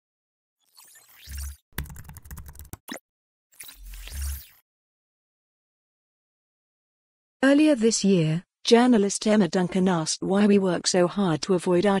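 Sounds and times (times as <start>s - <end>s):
computer keyboard typing: 1.8s - 3.0s.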